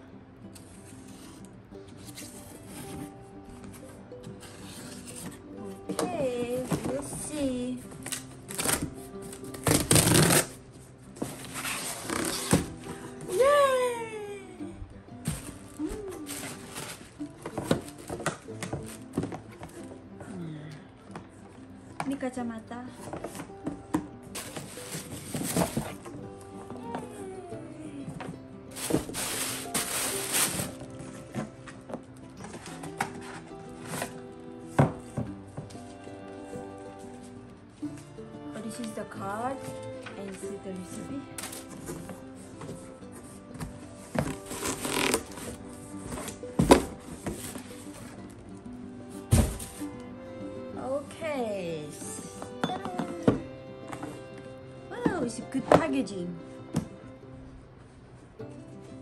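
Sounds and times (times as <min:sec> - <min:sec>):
faint background music: 0:00.0 - 0:59.0
cardboard box rustling and scraping: 0:04.4 - 0:07.4, 0:11.2 - 0:13.1, 0:24.4 - 0:26.2, 0:28.7 - 0:31.6, 0:41.4 - 0:48.2, 0:49.3 - 0:49.9
cardboard box being handled: 0:24.4 - 0:26.1, 0:49.3 - 0:49.8.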